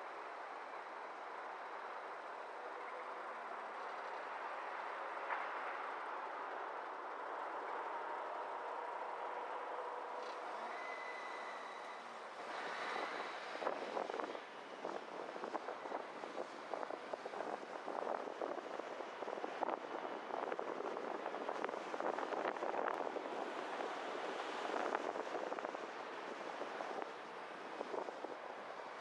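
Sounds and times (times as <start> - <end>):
road noise: 0.0 - 29.0.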